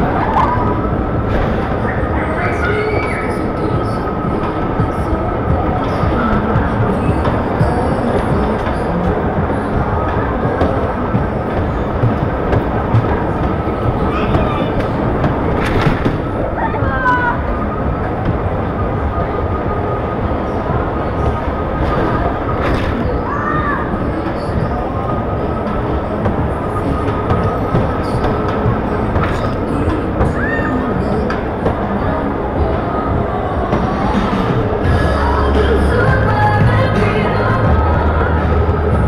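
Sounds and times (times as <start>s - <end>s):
dodgem car rattling rumble: 0.0s - 39.0s.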